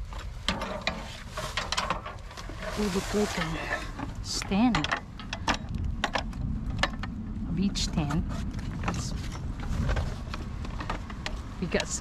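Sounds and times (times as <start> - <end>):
plastic bags and bubble wrap rustling: 1.0 - 4.6.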